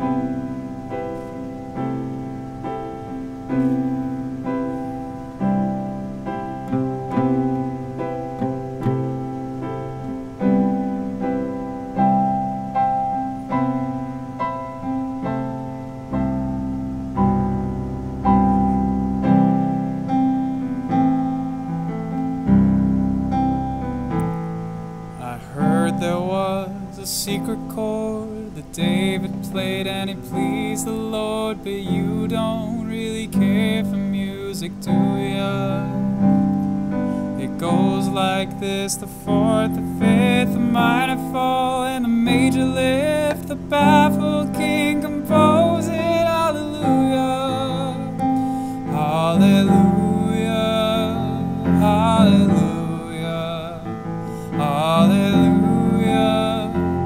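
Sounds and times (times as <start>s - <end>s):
piano chords: 0.0s - 57.0s
man singing with vibrato: 25.1s - 57.0s.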